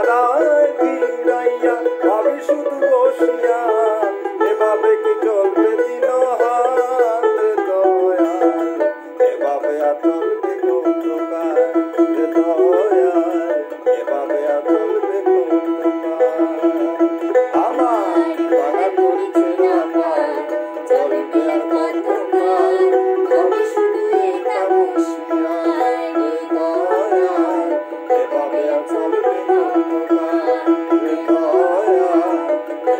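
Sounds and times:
plucked folk lute melody: 0.0s - 32.9s.

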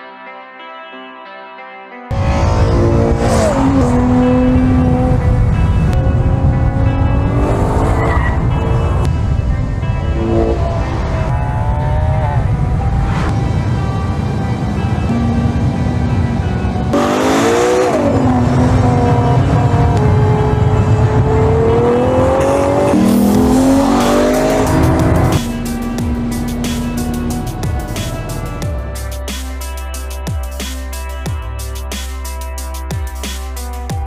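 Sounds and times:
background music: 0.0s - 34.0s
car engine accelerating through gears: 2.1s - 9.1s, 16.9s - 28.7s.

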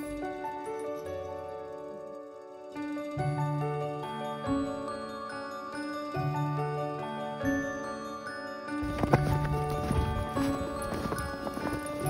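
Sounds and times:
gentle background music: 0.0s - 12.0s
boots crunching through snow: 8.8s - 12.0s.

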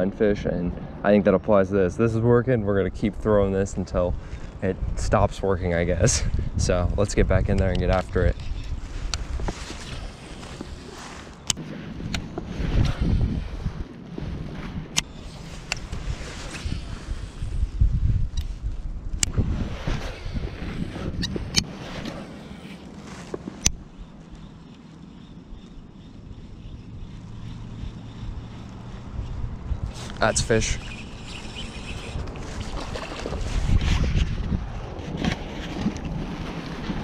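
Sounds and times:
wind buffeting microphone: 2.2s - 37.0s
water lapping around kayak: 7.9s - 18.8s, 19.4s - 37.0s
fishing reel clicks: 23.6s - 32.3s.

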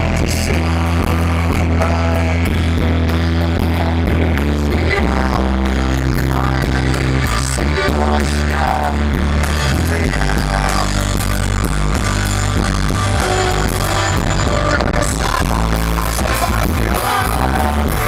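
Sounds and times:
drums: 0.0s - 18.0s
electric guitar: 0.0s - 18.0s
rock band playing live: 0.0s - 18.0s.

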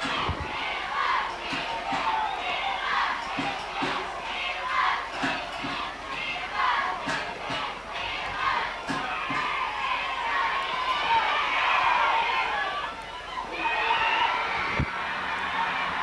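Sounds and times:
crowd chanting and cheering: 0.0s - 16.0s.

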